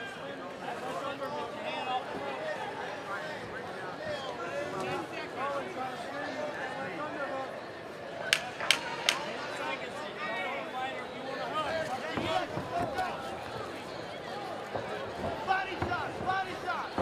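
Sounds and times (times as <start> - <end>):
crowd shouting and talking: 0.0 - 17.0.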